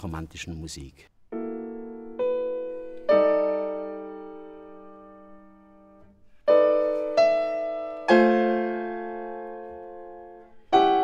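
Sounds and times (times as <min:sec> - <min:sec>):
piano chords: 0:01.1 - 0:11.0.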